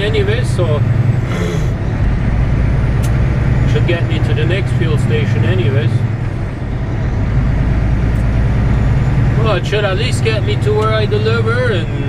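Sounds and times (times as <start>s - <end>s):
diesel truck engine droning: 0.0s - 12.0s
road noise: 0.0s - 12.0s.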